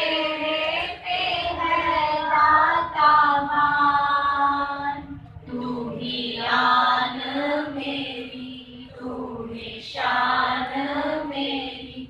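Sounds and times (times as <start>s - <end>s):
women singing in unison: 0.0s - 12.0s.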